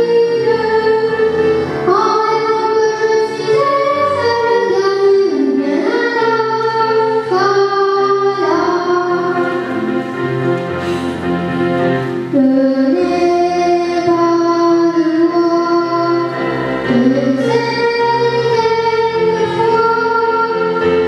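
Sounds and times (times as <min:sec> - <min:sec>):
child singing into a microphone: 0:00.0 - 0:09.8, 0:12.3 - 0:21.0
instrumental accompaniment: 0:00.0 - 0:21.0.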